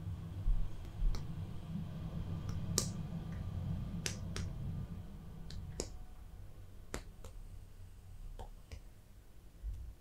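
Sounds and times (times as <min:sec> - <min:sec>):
low rumble: 0:00.0 - 0:06.9
fingers tapping on skin: 0:06.9 - 0:07.4, 0:08.3 - 0:08.9.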